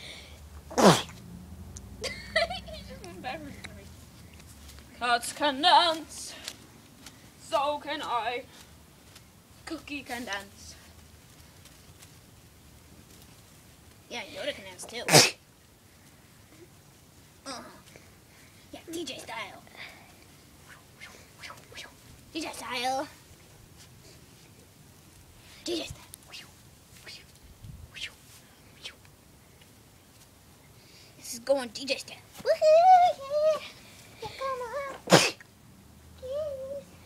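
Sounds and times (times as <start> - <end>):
person sneezing: 0.7 - 1.2, 15.1 - 15.4, 35.0 - 35.4.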